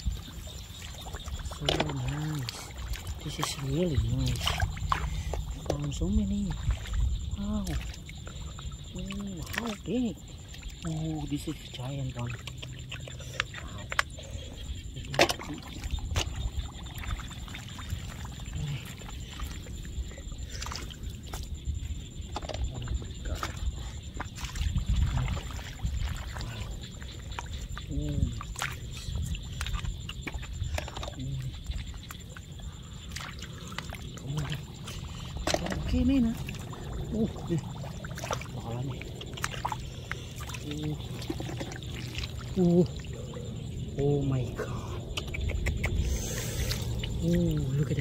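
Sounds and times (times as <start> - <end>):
sloshing and splashing water: 0.0 - 48.0.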